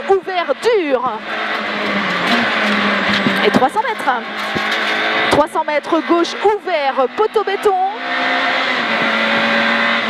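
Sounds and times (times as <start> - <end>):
rally car engine at high revs: 0.0 - 10.0.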